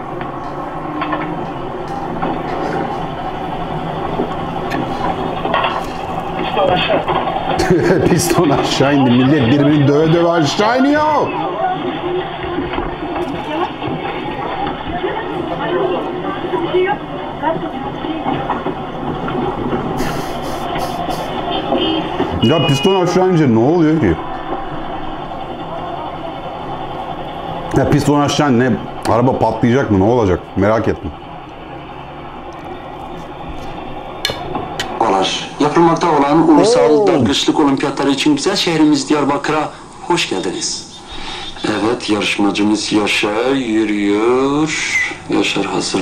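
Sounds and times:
bus engine and road rumble: 0:00.0 - 0:46.0
people talking: 0:06.4 - 0:11.9, 0:13.2 - 0:18.5, 0:22.3 - 0:24.2, 0:27.7 - 0:31.2, 0:35.0 - 0:46.0.

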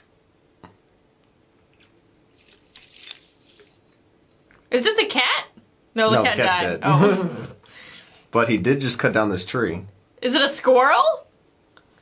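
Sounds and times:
tree branches rustling and crackling: 0:02.3 - 0:04.7.

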